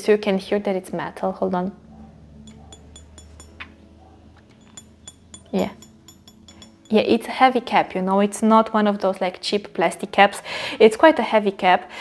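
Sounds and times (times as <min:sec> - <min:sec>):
metal cap clinking: 0:02.5 - 0:03.8, 0:04.4 - 0:07.8.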